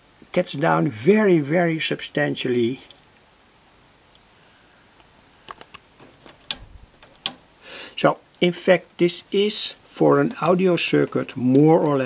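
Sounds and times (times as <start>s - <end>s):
knob clicking: 6.3s - 7.4s.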